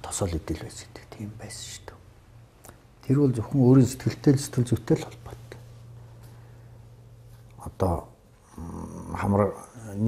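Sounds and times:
quiet breathy speech: 0:00.0 - 0:02.1.

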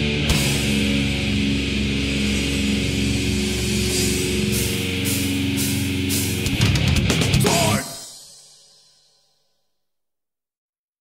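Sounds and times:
heavy metal band music: 0:00.0 - 0:08.6.

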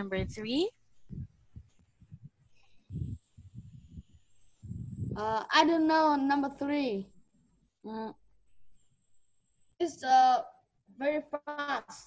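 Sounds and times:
faint steady high tone: 0:00.0 - 0:12.0
muffled thumps on microphone: 0:00.1 - 0:05.3.

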